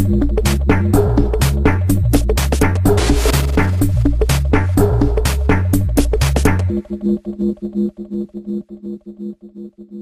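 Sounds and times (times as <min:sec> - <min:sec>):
pulsing synthesizer chord: 0:02.8 - 0:06.0.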